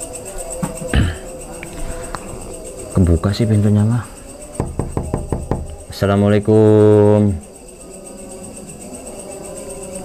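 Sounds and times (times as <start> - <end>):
knocking on wooden door: 4.6 - 6.0.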